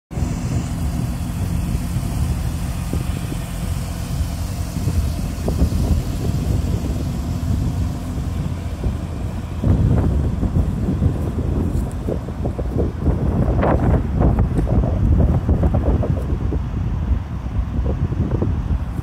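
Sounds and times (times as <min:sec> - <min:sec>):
car engine idling: 0:00.1 - 0:19.0.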